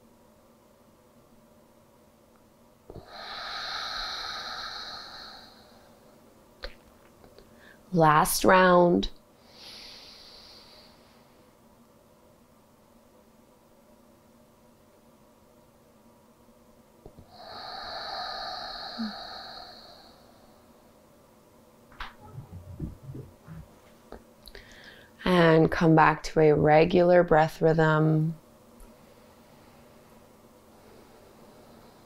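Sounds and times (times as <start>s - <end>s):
breathing through the nose: 3.0s - 5.9s, 9.4s - 11.3s, 17.3s - 20.4s.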